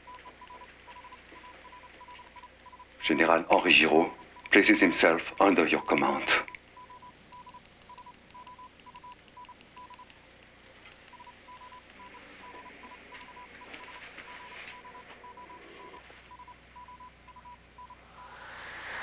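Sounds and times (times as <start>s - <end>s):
morse code beeps: 0.0s - 10.1s, 11.1s - 18.0s.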